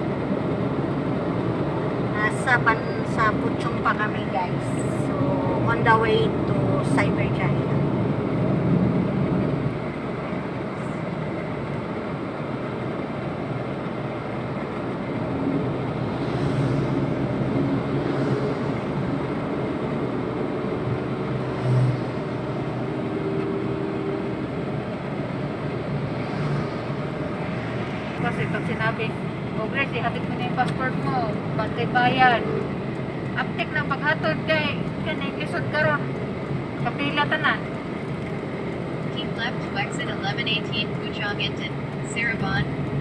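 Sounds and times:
car road noise from cabin: 0:00.0 - 0:43.0.

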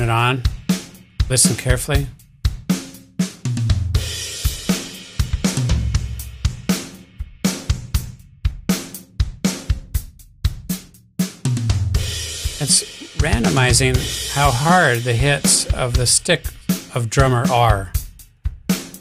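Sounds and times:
drum kit playing a beat: 0:00.0 - 0:19.0.

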